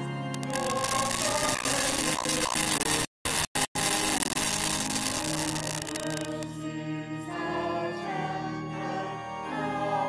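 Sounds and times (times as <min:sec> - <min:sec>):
loud static hiss: 0:00.4 - 0:06.4
faint choir singing: 0:05.7 - 0:10.0.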